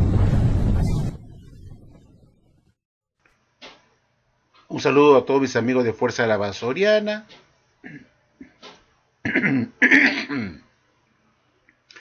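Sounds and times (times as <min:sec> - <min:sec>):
man clearing throat: 0:07.8 - 0:08.1, 0:09.2 - 0:10.7.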